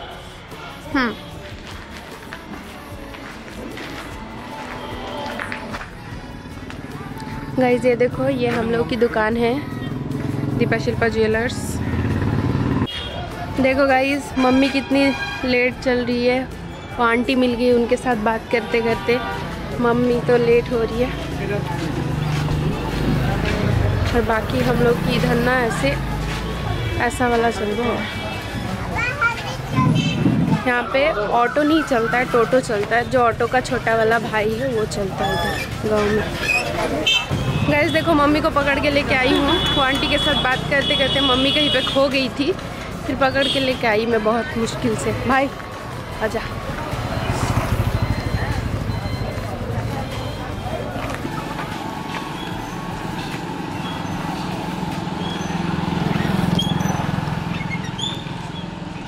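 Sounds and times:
people's voices: 0.0s - 58.5s
steady hum of street noise: 0.0s - 59.0s.

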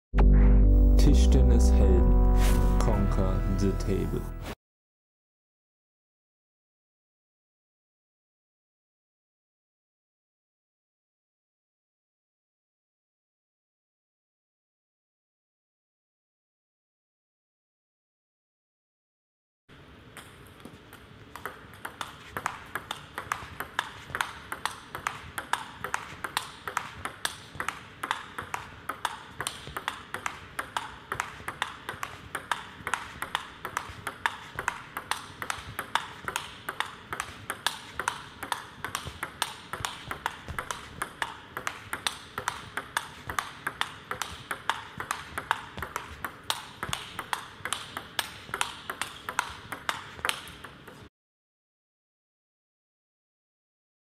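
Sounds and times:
table tennis ball clicking: 20.1s - 51.0s.

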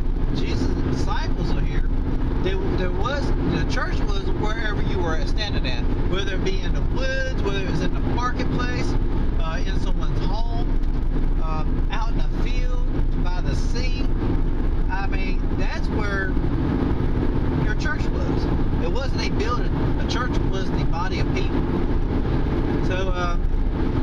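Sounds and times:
car road and engine noise: 0.0s - 24.0s
person talking: 0.3s - 10.7s, 11.4s - 14.1s, 14.9s - 16.4s, 17.6s - 21.6s, 22.8s - 23.5s.

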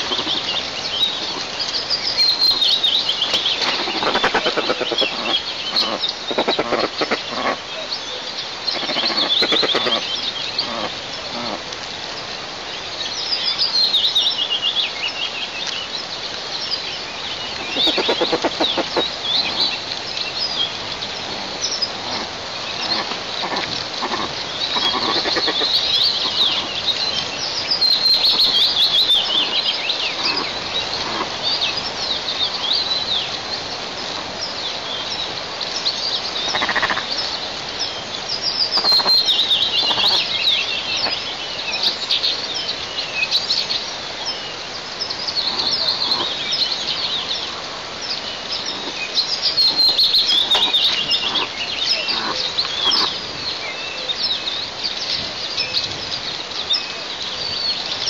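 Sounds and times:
birds calling: 0.0s - 58.0s
outdoor background hiss: 0.0s - 58.0s.

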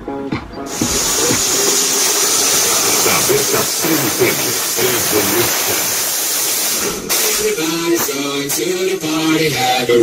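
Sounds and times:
loud hiss: 0.7s - 8.8s
loud hip-hop music with vocals: 0.7s - 10.0s.

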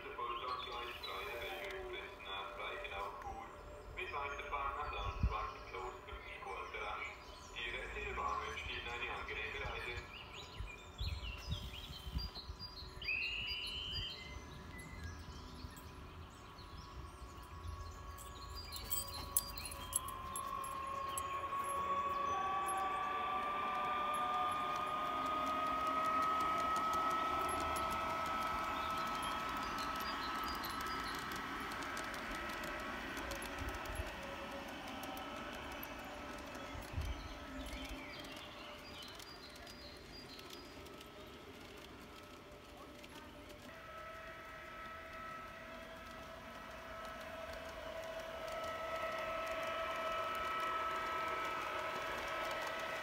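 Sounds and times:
wheels hissing on rail: 0.0s - 5.9s, 6.5s - 53.0s
birds chirping: 0.0s - 42.8s
electric motor and gear whine: 7.2s - 53.0s.

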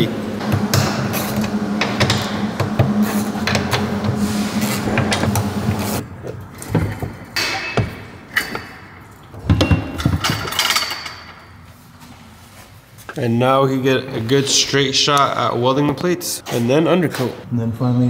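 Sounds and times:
steady hum: 0.0s - 13.0s.

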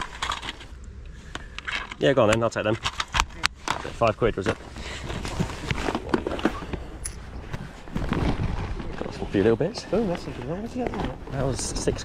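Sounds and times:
steady low rumble: 0.0s - 12.0s
plastic bag rustling: 3.7s - 12.0s.

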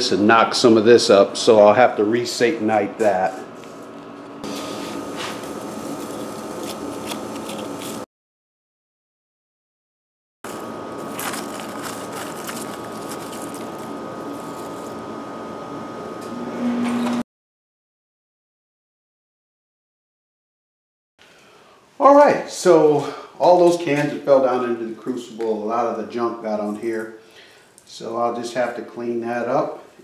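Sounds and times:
background hum: 0.0s - 8.0s, 10.5s - 17.2s, 21.2s - 30.0s
hands scraping through ash: 10.5s - 15.0s.

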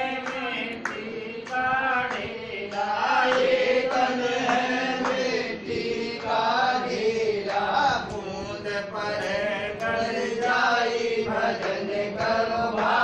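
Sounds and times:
group chanting devotional song: 0.0s - 13.0s.

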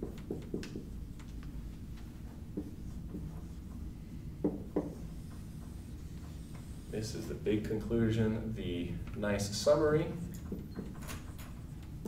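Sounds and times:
marker writing on a whiteboard: 0.0s - 7.7s
low room hum: 0.0s - 12.0s.

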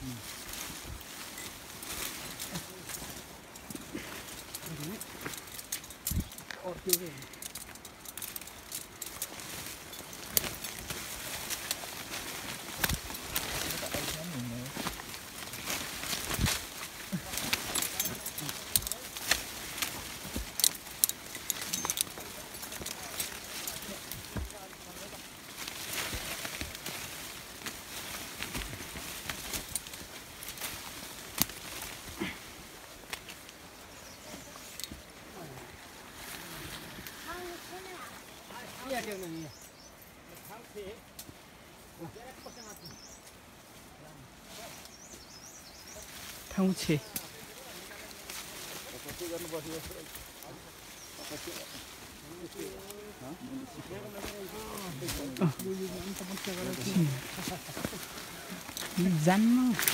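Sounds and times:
leaves and branches rustling: 0.0s - 59.9s
twigs snapping: 1.7s - 35.3s, 46.0s - 59.9s.

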